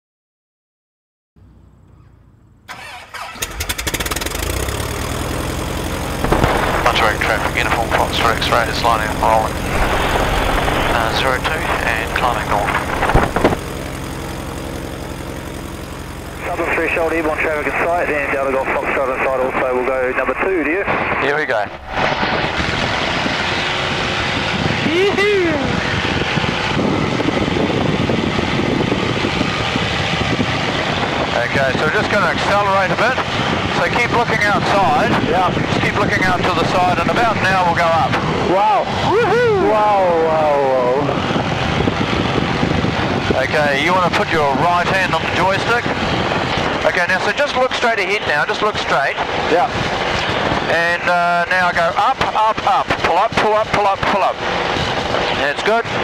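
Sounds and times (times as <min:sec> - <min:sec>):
propeller engine starting: 0:01.4 - 0:56.0.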